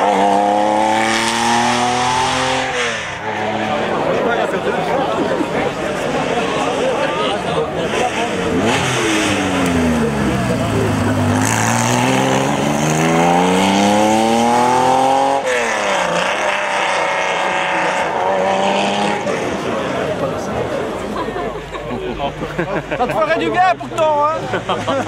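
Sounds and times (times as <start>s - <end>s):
rally car engine accelerating: 0.0s - 21.2s.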